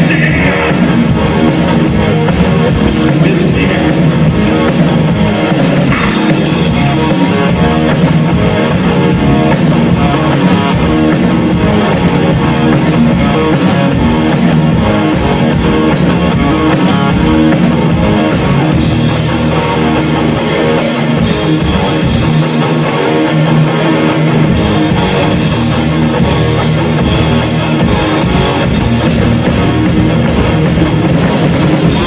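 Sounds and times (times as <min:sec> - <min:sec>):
drum and cymbal hits: 0:00.0 - 0:32.0
live rock band playing: 0:00.0 - 0:32.0.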